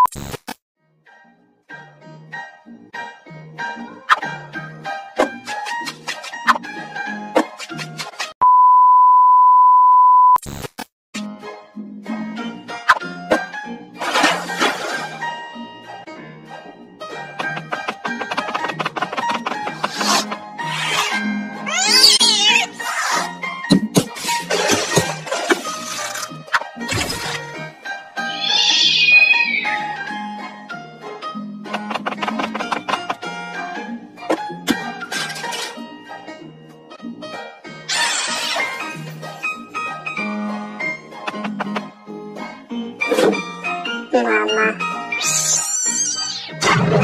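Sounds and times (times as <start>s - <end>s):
censor beep tone: 8.4s - 10.4s, 28.4s - 30.0s
cartoon background music: 11.2s - 47.0s
cartoon cat meow: 21.6s - 23.2s.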